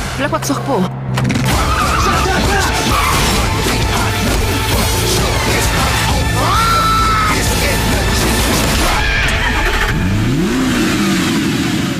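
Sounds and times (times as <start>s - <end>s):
car engine revving: 1.1s - 11.9s.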